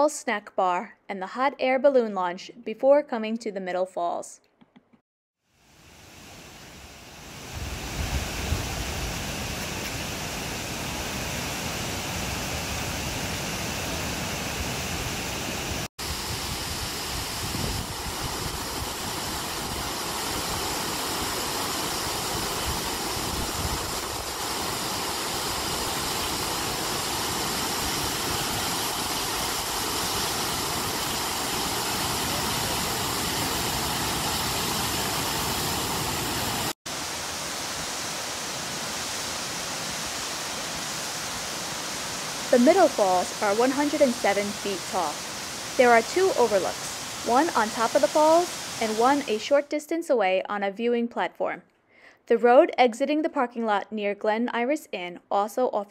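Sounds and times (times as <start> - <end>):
waterfall rushing: 5.8 - 49.4.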